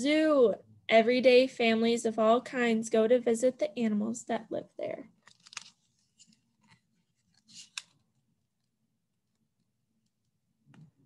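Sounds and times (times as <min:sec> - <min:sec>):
paper pages rustling: 0:05.2 - 0:08.0.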